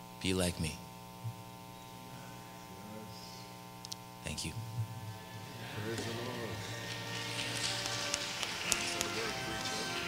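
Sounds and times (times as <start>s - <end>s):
soft keyboard chords: 4.3s - 10.0s.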